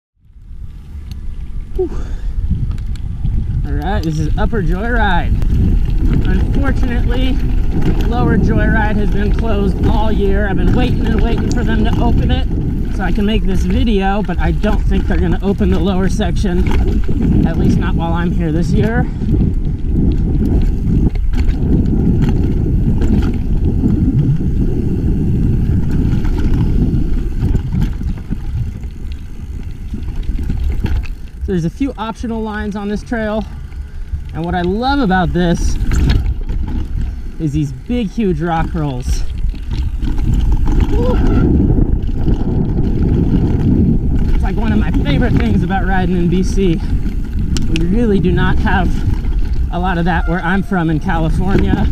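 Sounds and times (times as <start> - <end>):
bike tyres rolling over dirt: 0.2 - 51.9
wind on microphone: 0.2 - 51.9
bike rattles and knocks: 0.4 - 51.9.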